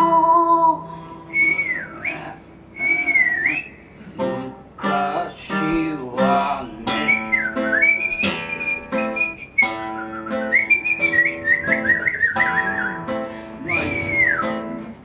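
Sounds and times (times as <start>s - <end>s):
acoustic guitar chords: 0.0s - 15.0s
whistled melody: 1.3s - 2.2s, 2.8s - 3.9s, 6.9s - 14.9s.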